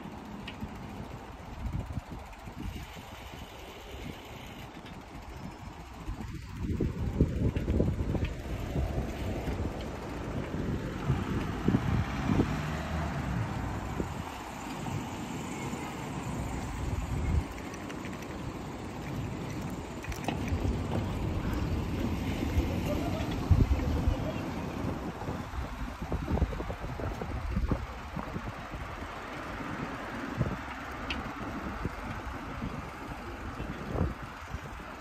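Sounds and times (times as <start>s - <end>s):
faint street noise: 0.0s - 35.0s
wind buffeting microphone: 0.7s - 35.0s.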